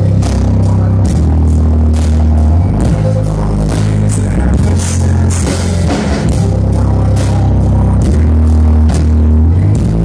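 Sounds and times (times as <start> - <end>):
hard rock band playing live: 0.0 - 10.0.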